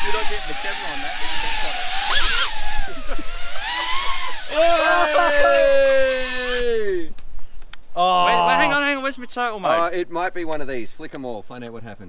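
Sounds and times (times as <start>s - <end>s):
drone propellers whining: 0.0s - 6.6s.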